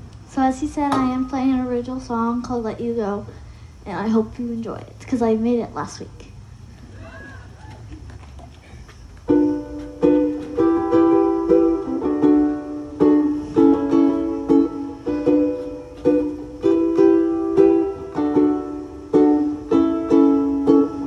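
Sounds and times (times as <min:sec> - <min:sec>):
ukulele strumming chords: 0:09.2 - 0:21.0.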